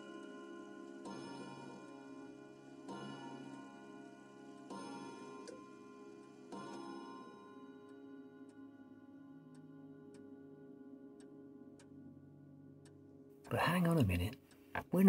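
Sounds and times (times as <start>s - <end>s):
faint clock ticking: 4.6s - 15.0s.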